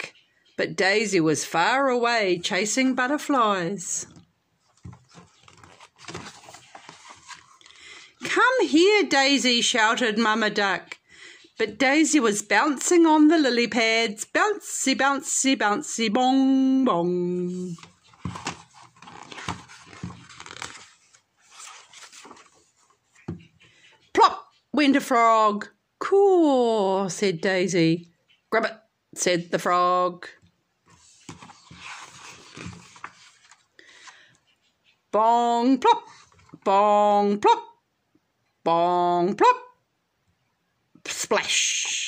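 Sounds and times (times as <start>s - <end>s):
paper page turning: 4.7s - 7.8s, 17.5s - 23.0s, 30.9s - 33.7s.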